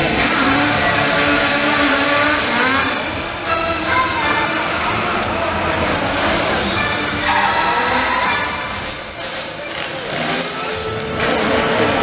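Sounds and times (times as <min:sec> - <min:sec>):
engines revving: 0:00.0 - 0:12.0
show music: 0:00.0 - 0:12.0.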